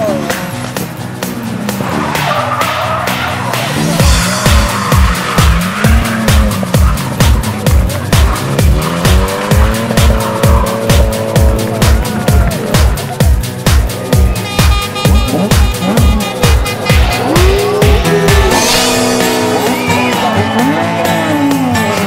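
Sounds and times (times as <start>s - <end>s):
car engine revving: 0.0s - 22.0s
electronic dance music: 0.0s - 22.0s.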